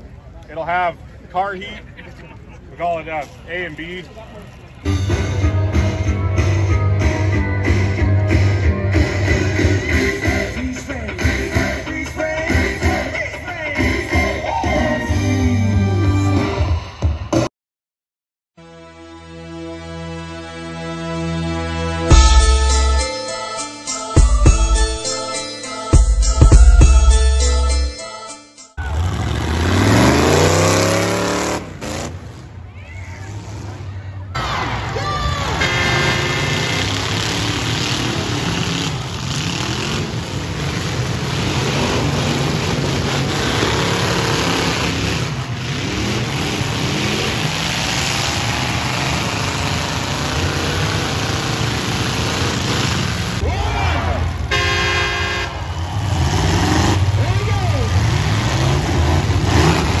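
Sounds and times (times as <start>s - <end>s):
car engines revving: 28.8s - 60.0s
horn-like tones: 35.5s - 37.4s, 53.6s - 56.5s.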